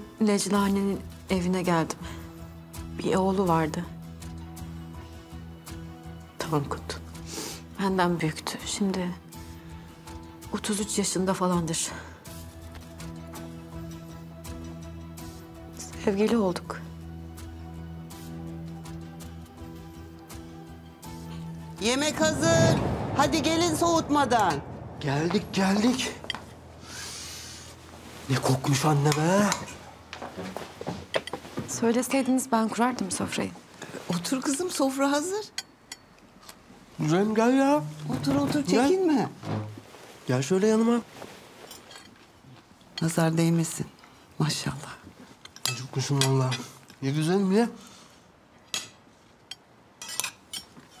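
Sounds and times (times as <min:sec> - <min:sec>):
cutlery clinking against dishes: 0:31.1 - 0:31.5, 0:45.4 - 0:47.0, 0:48.7 - 0:51.0.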